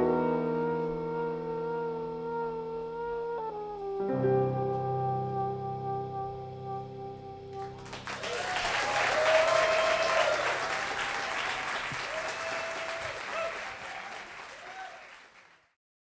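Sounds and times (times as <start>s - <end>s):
audience clapping: 7.6s - 15.8s
people cheering and whooping: 8.0s - 15.1s.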